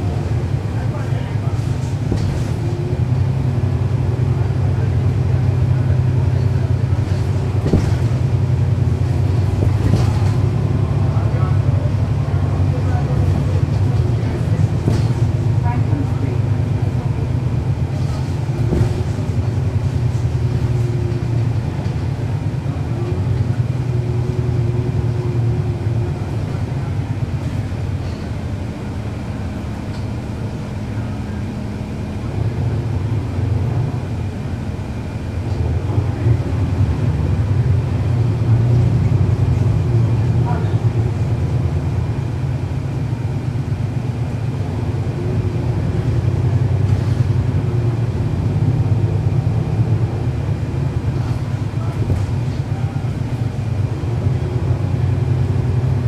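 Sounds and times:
bus diesel engine running: 0:00.0 - 0:56.0.

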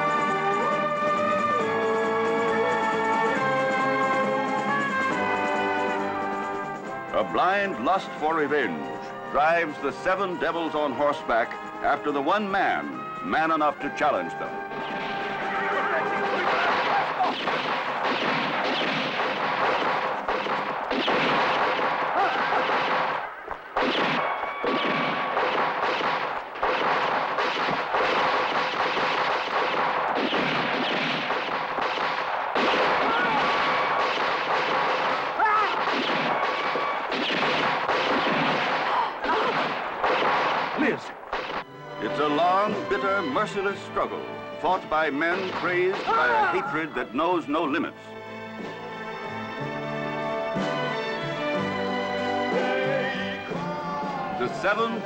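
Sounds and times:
rapid revolver shots: 0:14.7 - 0:41.7, 0:45.3 - 0:46.4.

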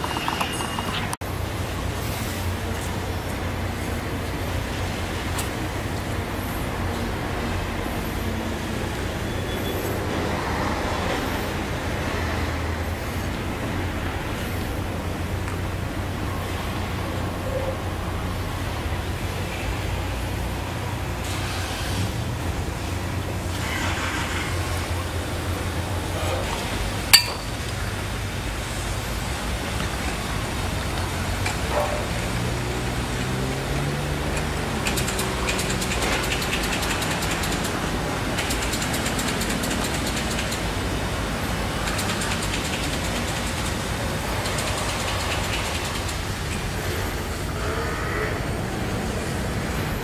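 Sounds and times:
street traffic: 0:00.0 - 0:50.0.

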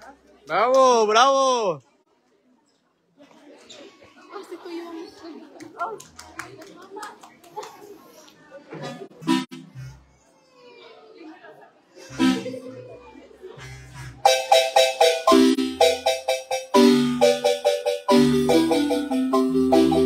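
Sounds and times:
marimba rapid rhythmic strikes: 0:14.2 - 0:20.0.

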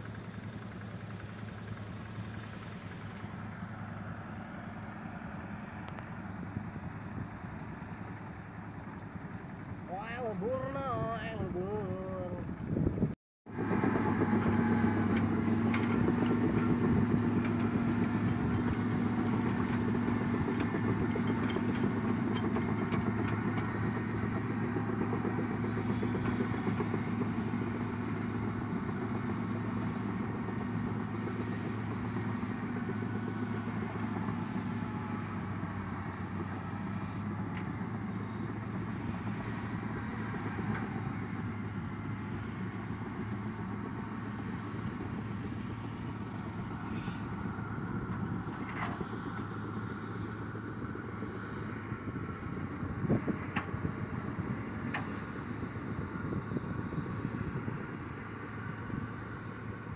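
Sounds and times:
bulldozer diesel engine under load: 0:00.0 - 0:59.9.

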